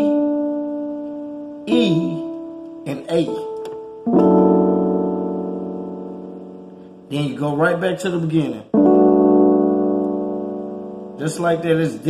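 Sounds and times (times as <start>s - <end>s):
piano note: 0.0s - 7.1s, 8.7s - 12.0s
piano chord ringing: 0.0s - 12.0s.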